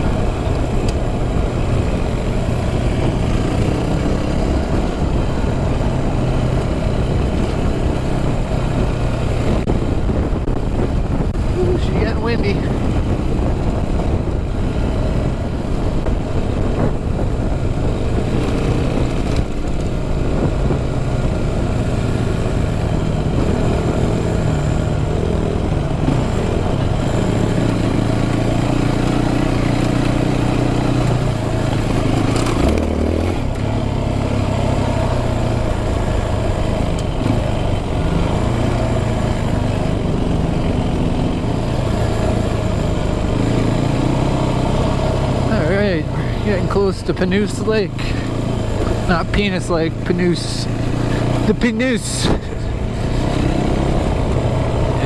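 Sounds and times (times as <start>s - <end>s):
wind on microphone: 0.0s - 27.9s
dirt bike engine revving: 20.6s - 55.0s.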